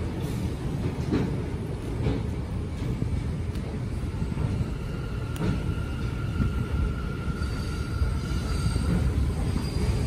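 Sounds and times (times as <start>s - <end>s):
subway train rumbling: 0.0s - 10.0s.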